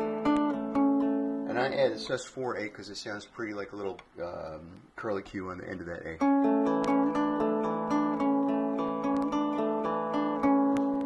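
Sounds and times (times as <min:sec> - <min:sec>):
fingerpicked acoustic guitar: 0:00.0 - 0:02.2, 0:06.2 - 0:11.0.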